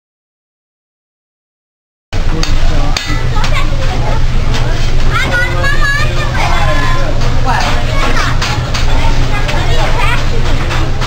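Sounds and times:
diners chattering: 2.2 - 11.0
steady low rumble: 2.2 - 11.0.

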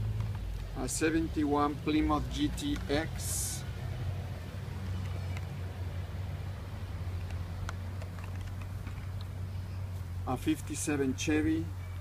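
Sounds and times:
plastic packs clicking and rustling: 7.2 - 9.3.

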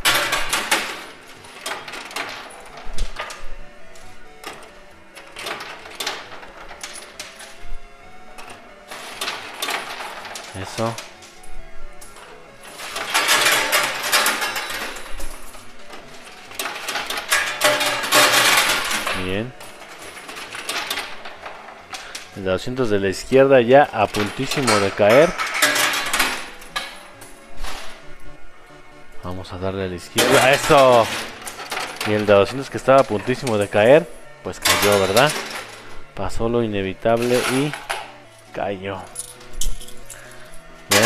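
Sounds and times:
background music: 0.0 - 41.0
coins clinking in coin pusher: 0.0 - 41.0
voices: 22.4 - 25.4.

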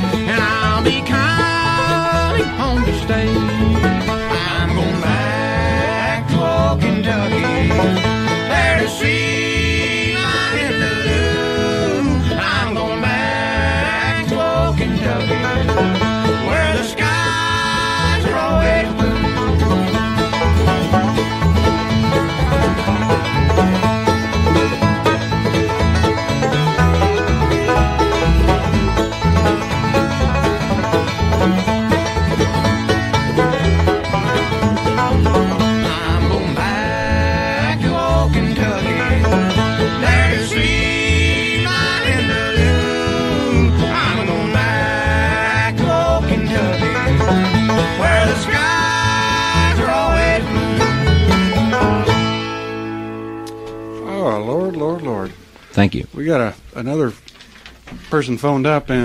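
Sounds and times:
banjo: 0.0 - 55.4
bluegrass band playing: 0.0 - 55.9
singing in harmony: 4.3 - 7.8, 8.4 - 15.7, 16.4 - 19.2, 35.8 - 47.1, 47.9 - 50.6.

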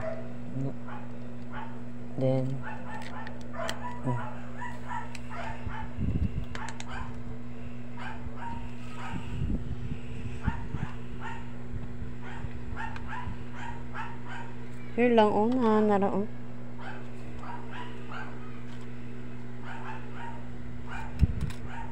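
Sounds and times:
low hum: 0.0 - 21.9
dog high-pitched calls: 8.0 - 9.3, 16.8 - 18.6, 19.6 - 21.1.

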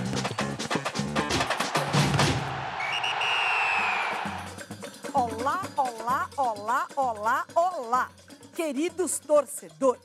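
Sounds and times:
long high whistle blast: 2.8 - 4.2.

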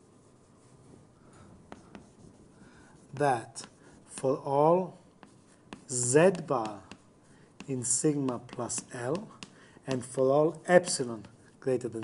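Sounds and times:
writing on a board: 0.0 - 12.0
light taps: 5.2 - 10.2.

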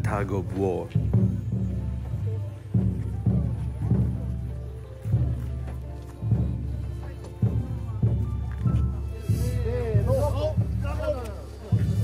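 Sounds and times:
deep drum struck slowly: 0.9 - 11.1
voices: 6.8 - 12.0.

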